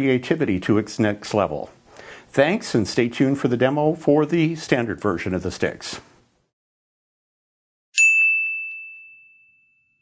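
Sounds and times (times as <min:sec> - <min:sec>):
high bell-like ding: 0:08.0 - 0:10.0.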